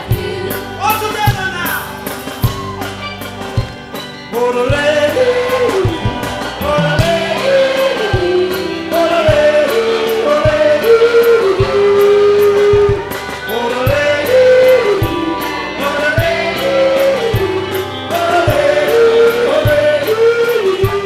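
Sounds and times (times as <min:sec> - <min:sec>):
country band with guitars and drums: 0:00.0 - 0:21.0
man singing: 0:04.3 - 0:21.0.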